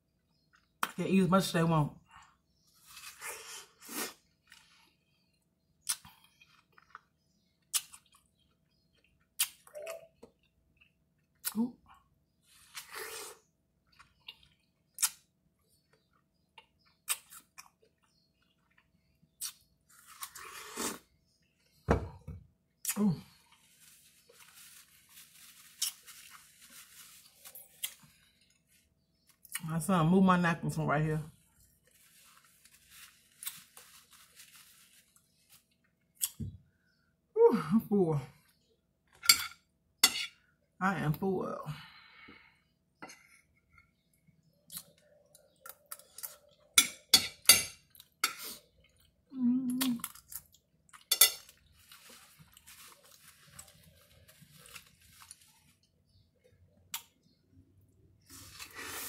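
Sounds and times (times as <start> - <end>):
watermelon being bitten and chewed: 5.8 - 11.7, 12.5 - 15.4, 16.0 - 21.4, 25.6 - 26.5, 47.9 - 56.2.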